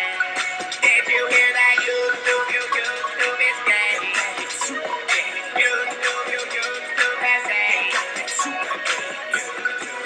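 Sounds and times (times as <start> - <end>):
backing track with steady beat: 0.0 - 10.0
person singing: 0.0 - 10.0.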